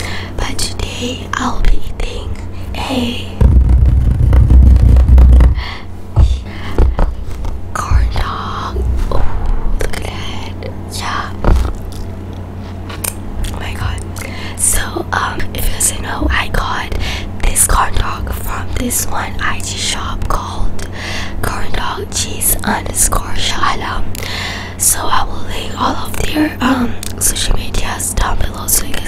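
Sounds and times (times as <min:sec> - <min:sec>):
steady low hum: 0:00.0 - 0:29.0
girl whispering: 0:00.4 - 0:03.4, 0:07.8 - 0:11.4.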